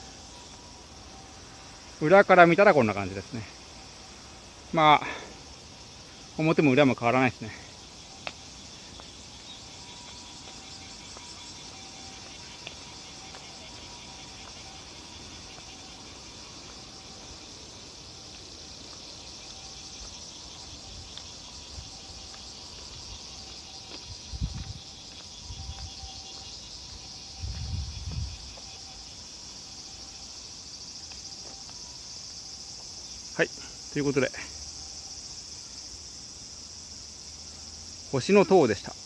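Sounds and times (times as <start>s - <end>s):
insects chirring: 0.0s - 39.0s.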